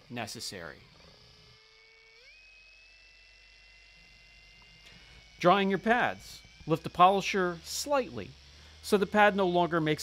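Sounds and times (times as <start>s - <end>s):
polisher motor whine: 0.0s - 10.0s.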